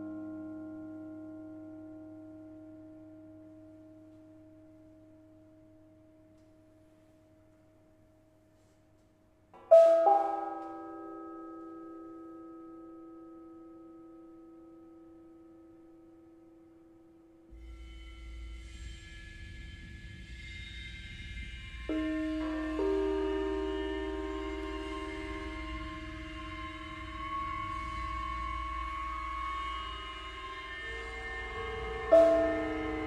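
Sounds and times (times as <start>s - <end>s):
bell-like tones ringing: 9.6s - 13.0s
gongs and bells ringing: 21.5s - 33.0s.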